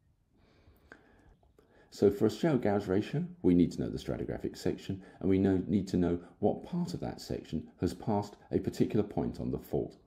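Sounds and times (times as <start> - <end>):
faint breath: 0.3 - 2.0.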